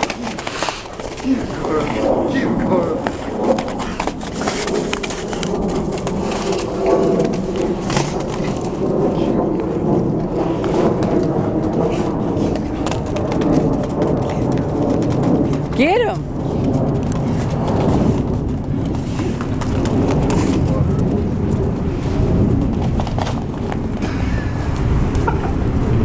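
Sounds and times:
dog boots clicking on pavers: 0.0s - 25.4s
low wavering sound: 1.0s - 26.0s.

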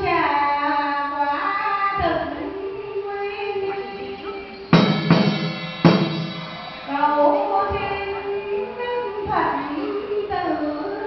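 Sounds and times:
loud drum strikes: 4.7s - 8.1s.

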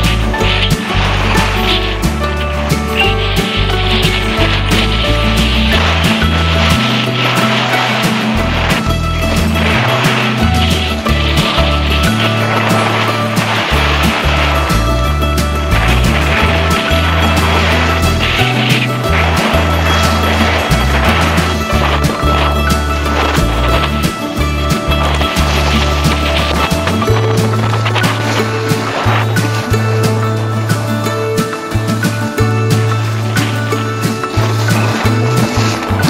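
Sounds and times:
background music with bass line: 0.0s - 36.0s.

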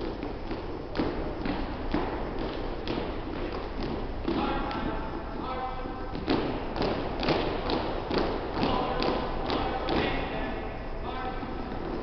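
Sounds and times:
marching footsteps on hardwood floor: 0.0s - 5.2s, 6.1s - 10.3s.

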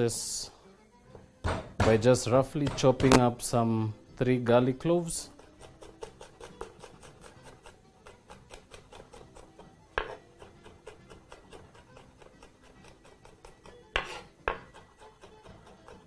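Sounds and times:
loud knock on cutting board: 1.4s - 2.0s, 10.0s - 10.2s, 14.0s - 14.7s
knife chopping on wooden board: 1.4s - 3.3s, 5.4s - 16.0s.

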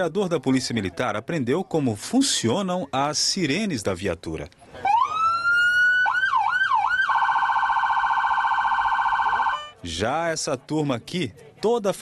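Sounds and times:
police siren: 4.8s - 9.8s.

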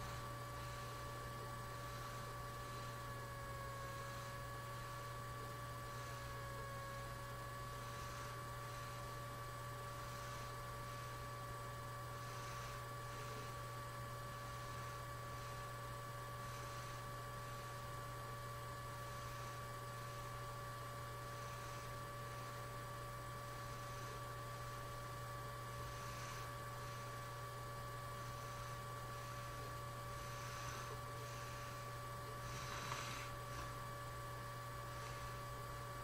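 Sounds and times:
thin steady tones: 0.0s - 35.9s
low electrical hum: 0.0s - 36.0s.

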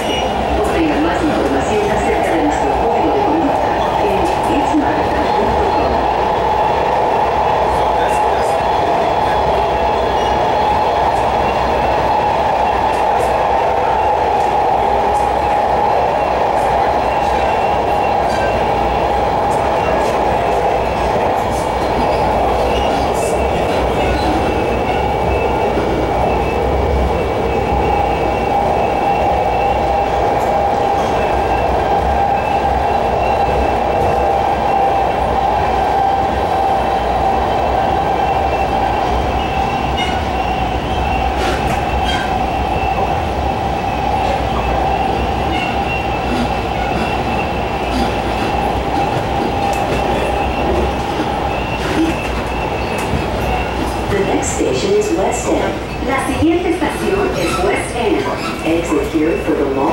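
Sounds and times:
train wheels rumbling on rail: 0.0s - 59.9s
train whine: 0.0s - 59.9s.

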